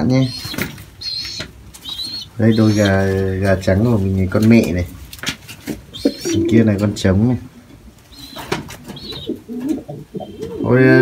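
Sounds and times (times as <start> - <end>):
pigeon cooing: 0.0 - 3.2, 5.9 - 6.8, 8.1 - 11.0
man speaking: 2.4 - 4.9, 6.2 - 7.5, 10.6 - 11.0.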